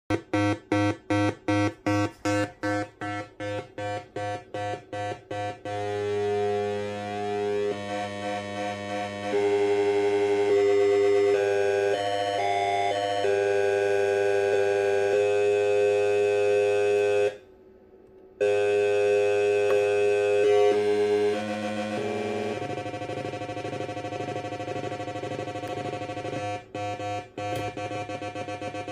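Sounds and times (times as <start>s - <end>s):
buzzy square-wave tone: 0.1s - 17.4s, 18.4s - 28.9s.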